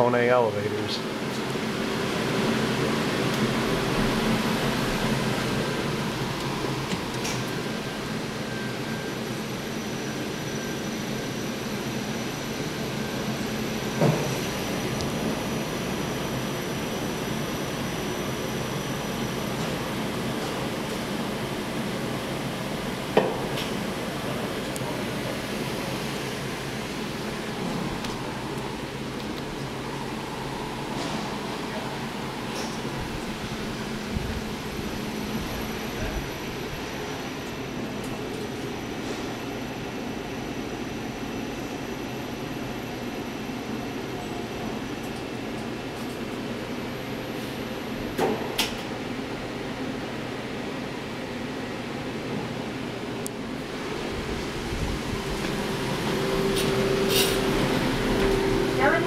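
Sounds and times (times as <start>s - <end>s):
elevator running hum: 0.0s - 59.0s.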